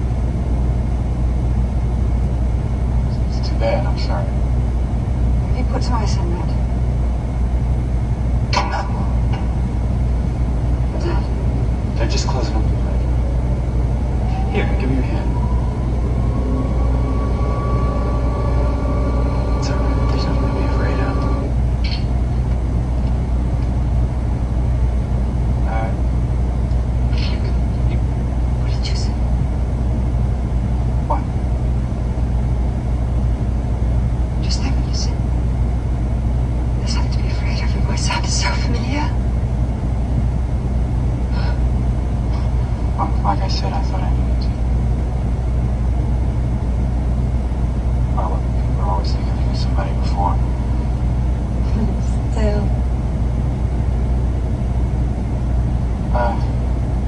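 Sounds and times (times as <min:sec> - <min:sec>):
faint film dialogue: 0:00.1 - 0:57.0
vehicle engine idling: 0:02.1 - 0:46.0.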